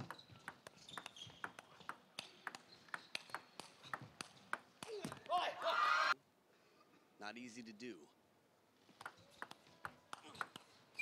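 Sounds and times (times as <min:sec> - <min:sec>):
table tennis ball clicking: 0:00.0 - 0:04.7
shouting and cheering: 0:05.3 - 0:06.2.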